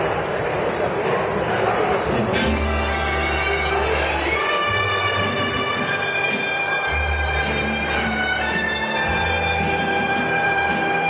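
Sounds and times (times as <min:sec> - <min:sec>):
busy hubbub: 0:00.0 - 0:11.0.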